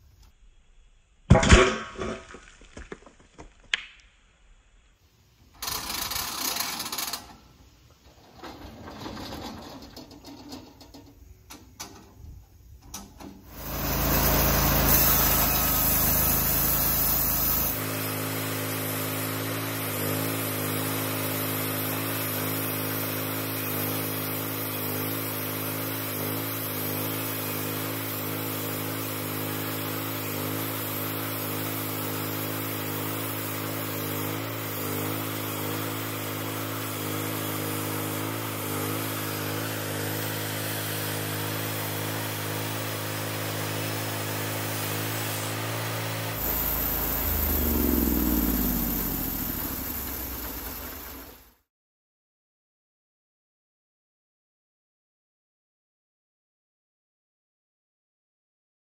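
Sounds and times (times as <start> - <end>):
gasoline engine running: 13.5 - 17.8, 46.3 - 51.6
band saw cutting log: 13.5 - 51.4.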